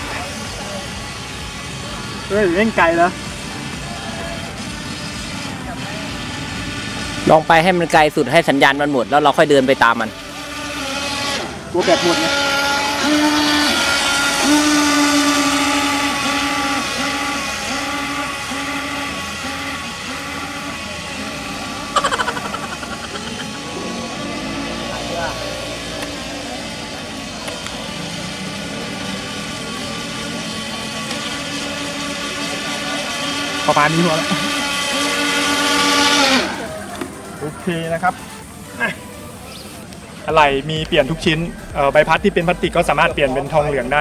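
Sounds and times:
toy speedboat motors whining: 0.0s - 41.7s.

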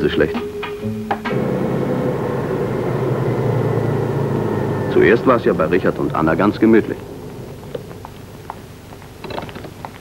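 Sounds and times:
car engine running: 1.3s - 9.2s.

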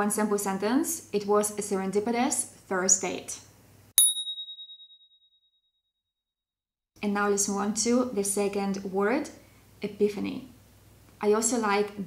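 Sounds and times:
bright bell ding: 4.0s - 5.2s.

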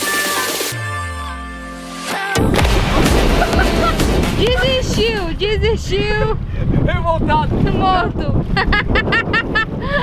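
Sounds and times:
wind buffeting microphone: 4.2s - 10.0s.

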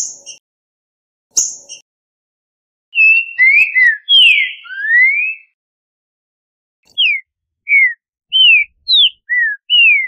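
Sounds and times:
bird whistles sliding in pitch: 3.0s - 5.6s, 6.9s - 10.0s.

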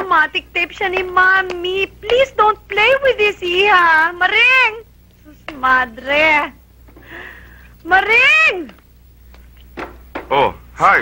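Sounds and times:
person speaking: 0.0s - 6.6s.

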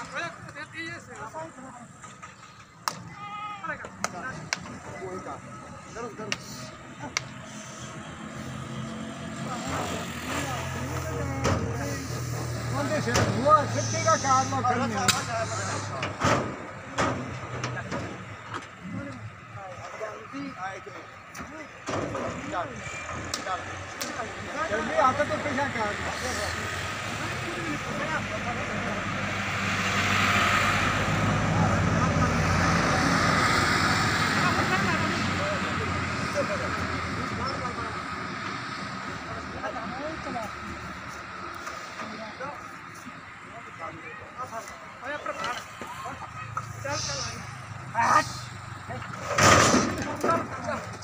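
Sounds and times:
men calling out: 3.0s - 8.7s.

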